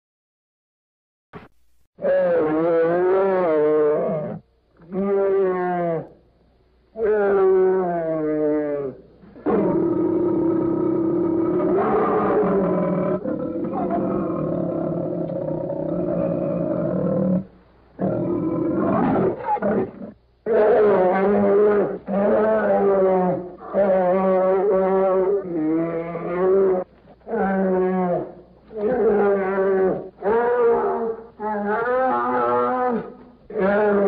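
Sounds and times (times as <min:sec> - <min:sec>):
bear roaring: 0:02.0 - 0:06.1, 0:07.0 - 0:34.0.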